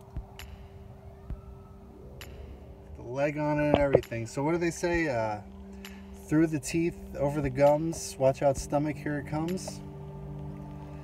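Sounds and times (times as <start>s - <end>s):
car cabin hum: 3.0s - 5.4s.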